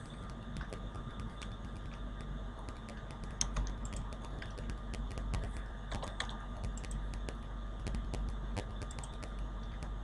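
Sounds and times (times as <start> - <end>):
low hum: 0.0 - 10.0
keyboard and mouse clicking: 2.6 - 10.0.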